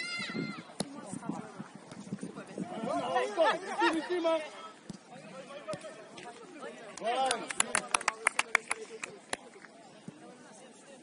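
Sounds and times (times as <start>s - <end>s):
players' voices: 0.0s - 11.0s
soft thuds of feet and ball: 0.7s - 2.3s.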